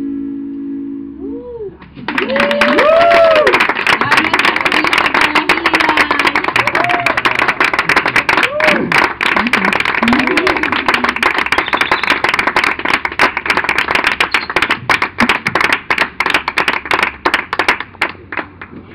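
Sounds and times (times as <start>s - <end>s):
audience clapping: 1.9s - 18.8s.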